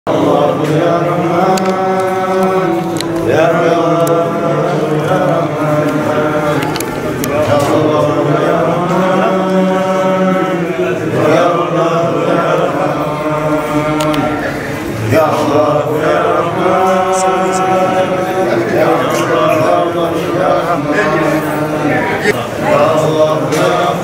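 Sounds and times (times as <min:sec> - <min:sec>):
voices chanting: 0:00.1 - 0:24.0.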